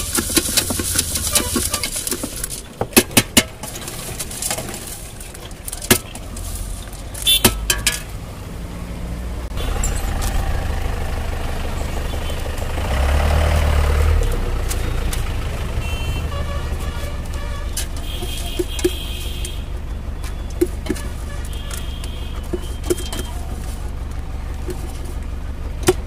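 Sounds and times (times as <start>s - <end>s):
newspaper rustling: 0.0s - 7.4s
road traffic rumble: 0.0s - 26.0s
vehicle passing close by: 8.1s - 18.5s.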